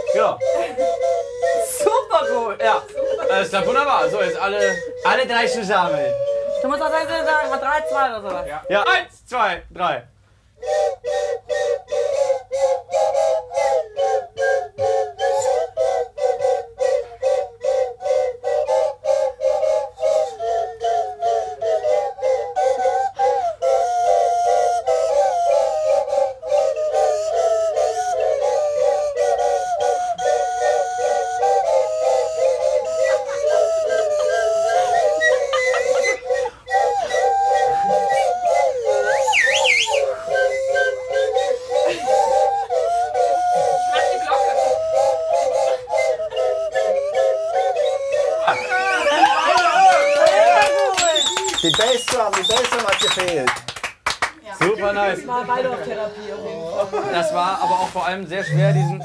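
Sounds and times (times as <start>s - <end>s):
plastic slide whistles playing: 26.0s - 50.0s, 51.0s - 53.3s, 57.6s - 59.0s.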